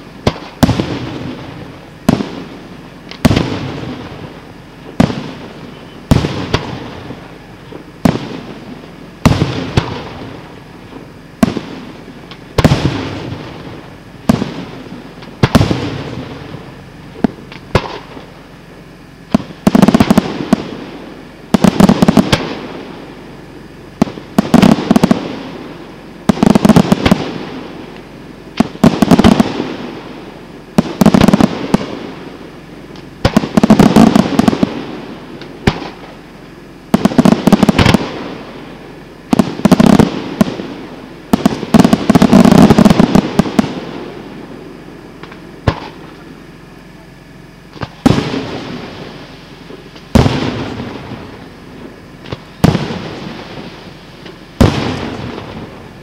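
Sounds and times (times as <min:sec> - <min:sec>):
firework shells bursting: 0:00.2 - 0:18.5, 0:19.3 - 0:23.3, 0:23.9 - 0:46.8, 0:47.6 - 0:56.0.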